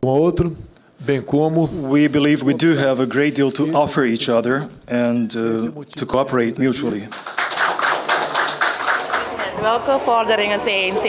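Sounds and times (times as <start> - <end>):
audience applause: 7.1 - 10.1.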